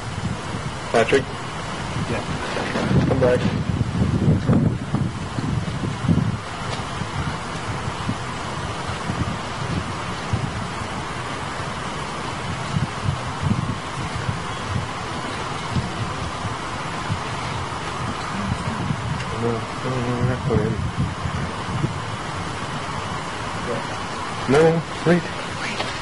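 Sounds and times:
microphone hiss: 0:00.0 - 0:26.0
low rumbling bumps on microphone: 0:01.8 - 0:10.9.

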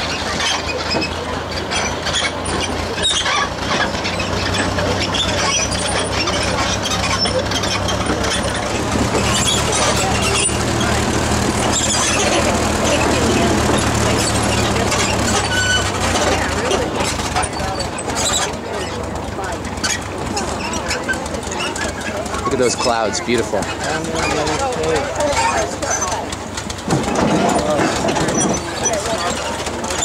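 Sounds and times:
tractor engine running: 0:00.0 - 0:30.0.

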